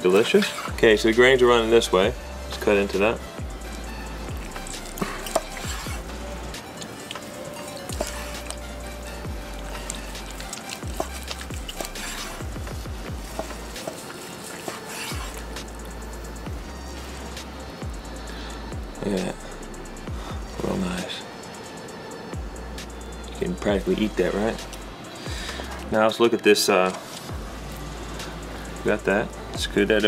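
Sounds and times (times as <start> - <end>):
background music with bass line: 0.0 - 21.2, 22.3 - 26.0, 27.3 - 30.0
knife slicing through brisket crust: 0.1 - 0.8, 3.6 - 17.7.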